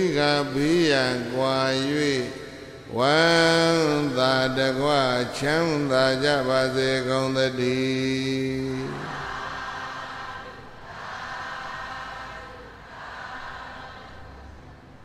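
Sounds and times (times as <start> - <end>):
man chanting: 0.0 - 9.4
steady background noise: 0.0 - 15.0.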